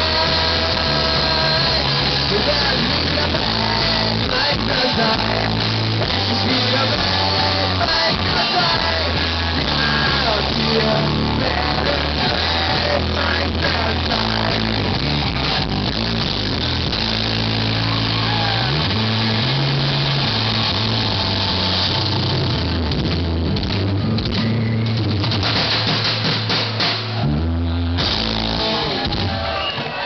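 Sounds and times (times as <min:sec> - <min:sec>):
sliding bass notes: 0:00.0 - 0:29.6
live rock band playing: 0:00.0 - 0:30.0.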